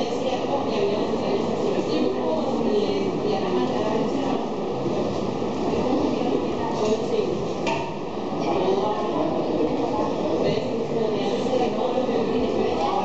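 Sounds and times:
chatter of many voices: 0.0s - 13.0s.

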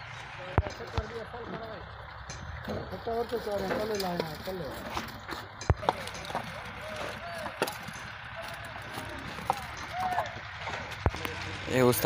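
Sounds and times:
faint men's voices: 0.0s - 12.0s.

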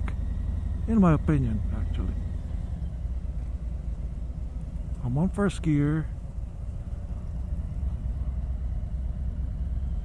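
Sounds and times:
motorcycle engine low rumble: 0.0s - 10.0s.

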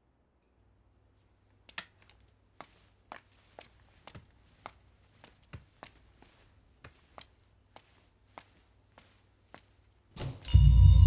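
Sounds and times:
faint footsteps on stairs: 1.6s - 10.5s.

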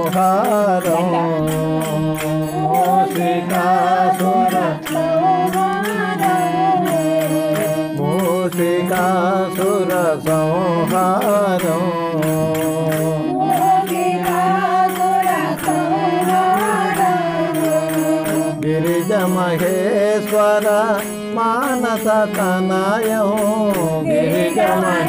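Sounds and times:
quick even percussion beat: 0.0s - 25.0s
wavering devotional melody: 0.0s - 25.0s.

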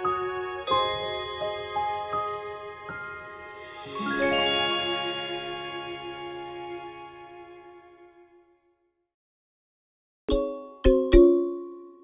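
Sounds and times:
bell-like chime notes: 3.8s - 6.2s, 10.3s - 12.0s.

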